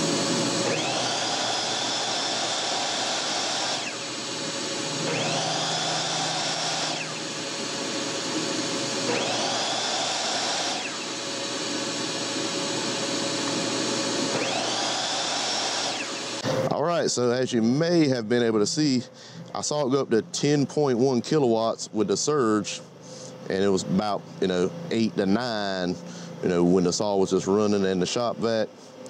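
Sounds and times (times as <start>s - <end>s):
electric saw whining: 0.0s - 16.7s
shop vac running: 0.0s - 29.0s.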